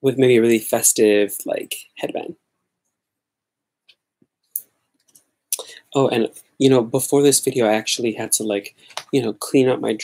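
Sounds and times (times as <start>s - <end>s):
person speaking: 0.0s - 2.5s, 3.8s - 10.0s
person breathing: 5.5s - 6.0s.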